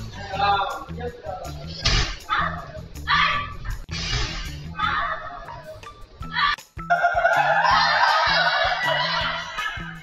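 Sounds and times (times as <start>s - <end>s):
background music: 0.0s - 10.0s
woman shrieking laughter: 7.0s - 10.0s.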